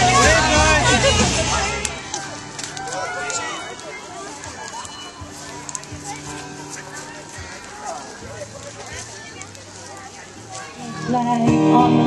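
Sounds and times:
people talking outdoors: 0:00.0 - 0:12.0
faint clicks: 0:08.6 - 0:10.7.

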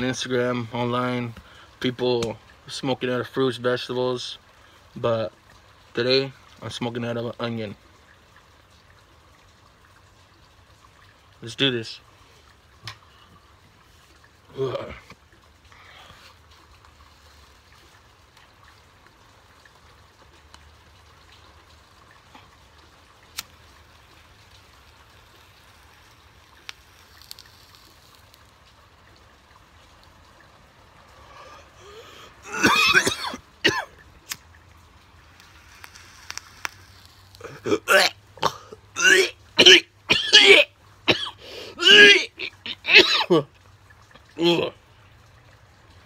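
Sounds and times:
man coughing: 0:32.4 - 0:33.9, 0:37.4 - 0:43.4.

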